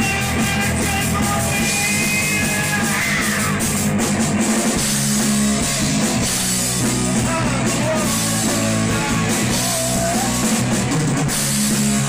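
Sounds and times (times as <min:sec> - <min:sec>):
bass guitar: 0:00.0 - 0:12.0
drum kit: 0:00.0 - 0:12.0
electric guitars: 0:00.0 - 0:12.0.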